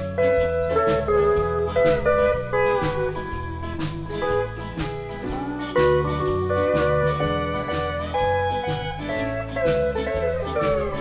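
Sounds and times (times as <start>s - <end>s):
bass line: 0.0s - 11.0s
drums striking: 0.0s - 11.0s
steel guitar sliding notes: 0.0s - 11.0s.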